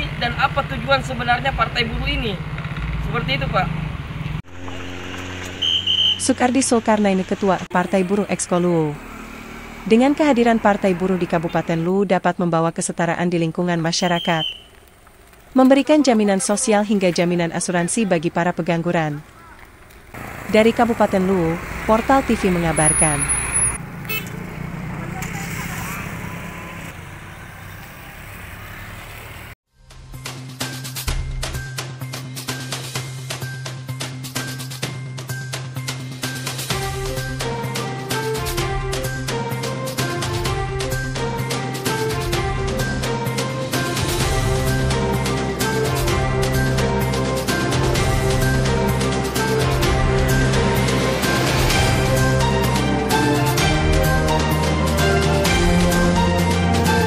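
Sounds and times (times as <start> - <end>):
low engine hum: 0.0 - 13.5, 14.7 - 29.6
traffic noise: 0.0 - 29.6, 42.7 - 57.0
vehicle engines running: 0.0 - 29.6, 36.6 - 57.0.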